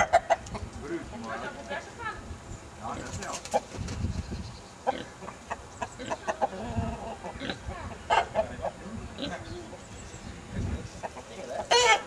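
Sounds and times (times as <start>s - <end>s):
chickens clucking: 0.0s - 1.8s, 2.8s - 12.0s.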